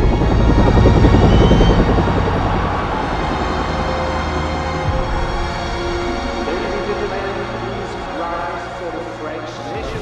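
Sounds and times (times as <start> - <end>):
helicopter rotor chop: 0.0 - 9.0.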